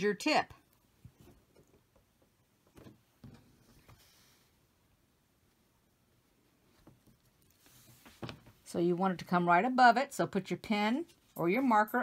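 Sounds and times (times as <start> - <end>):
faint handling taps and rustles: 6.7 - 8.7.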